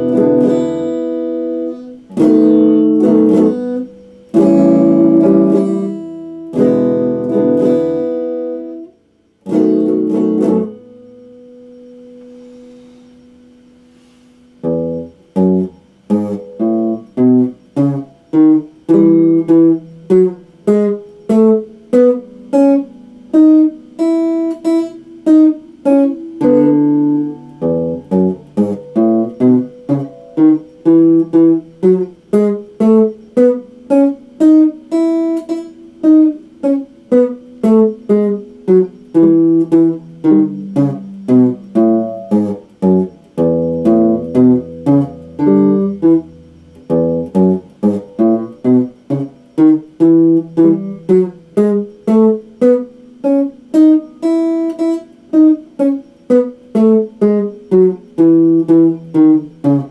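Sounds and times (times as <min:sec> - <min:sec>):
electric guitar notes: 0:00.0 - 0:59.9.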